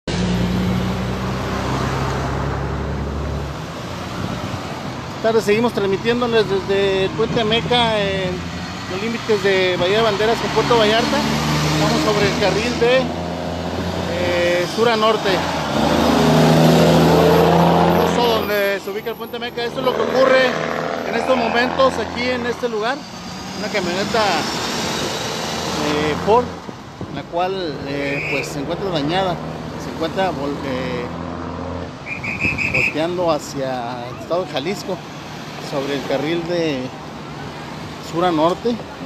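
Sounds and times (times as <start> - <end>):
road noise: 0.0 - 39.0
diesel truck engine drone: 0.1 - 32.6.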